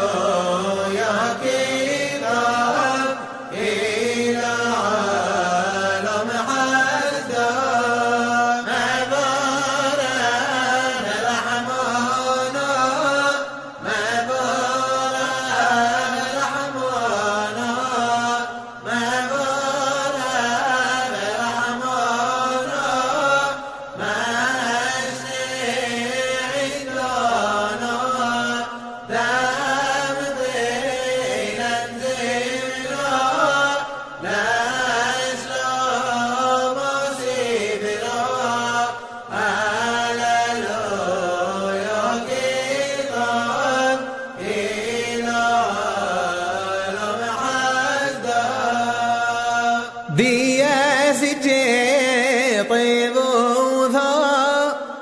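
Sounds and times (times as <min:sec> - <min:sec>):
person chanting: 0:00.0 - 0:55.0.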